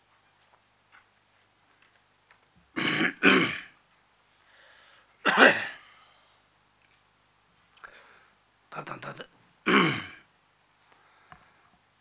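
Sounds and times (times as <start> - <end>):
man clearing his throat: 2.8 - 3.7, 5.3 - 5.8, 9.7 - 10.2.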